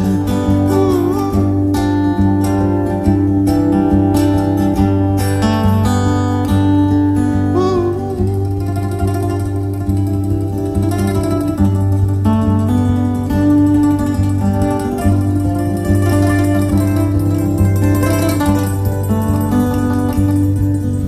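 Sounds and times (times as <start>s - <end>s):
acoustic guitar picking: 0.0s - 21.0s.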